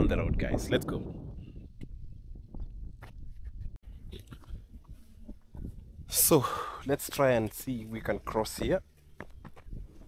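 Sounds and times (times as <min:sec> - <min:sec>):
wind rumble on microphone: 0:00.0 - 0:06.4, 0:09.3 - 0:10.0
footsteps on dry dirt: 0:08.8 - 0:10.0.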